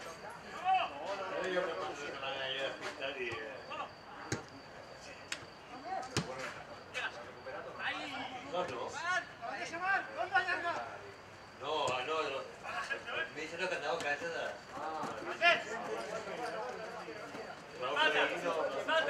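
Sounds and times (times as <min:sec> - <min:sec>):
players shouting: 0:11.8 - 0:19.0.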